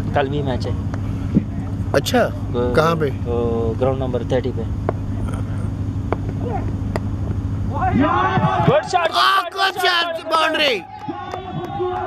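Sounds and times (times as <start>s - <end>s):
low hum: 0.0s - 12.0s
cricket bat striking ball: 6.1s - 7.1s
man shouting: 7.7s - 12.0s.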